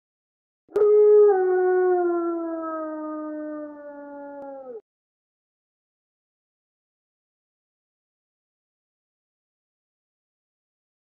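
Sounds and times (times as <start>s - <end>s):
wolf howling: 0.8s - 4.8s.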